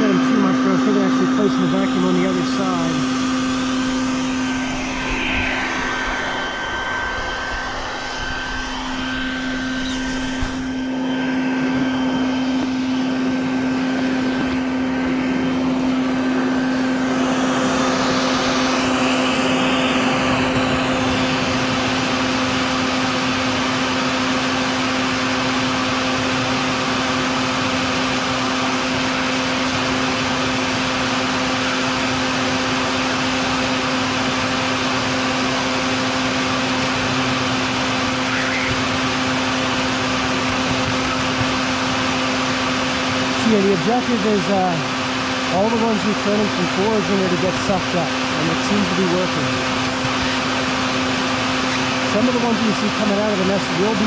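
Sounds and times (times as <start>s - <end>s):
vacuum humming: 0.0s - 54.0s.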